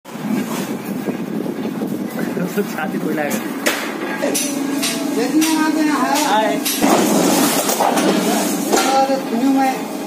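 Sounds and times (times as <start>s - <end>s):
workshop machinery rattling: 2.0s - 10.0s.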